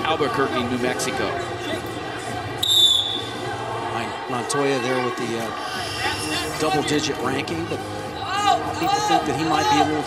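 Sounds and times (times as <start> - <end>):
murmur of arena crowd: 0.0 - 10.0
referee's whistle blast: 2.6 - 3.3.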